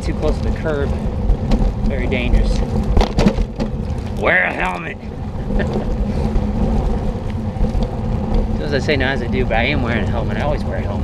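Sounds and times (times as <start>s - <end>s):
bicycle tyres rolling on wet pavement: 0.0s - 11.0s.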